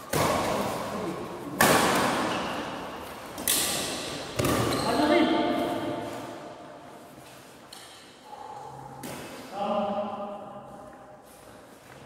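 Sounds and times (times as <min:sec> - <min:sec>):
rackets hitting shuttlecock: 0:01.5 - 0:04.9.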